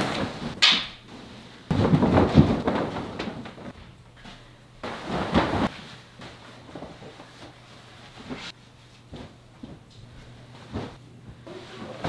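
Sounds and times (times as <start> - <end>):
duvet fabric rustling: 4.8 - 12.0.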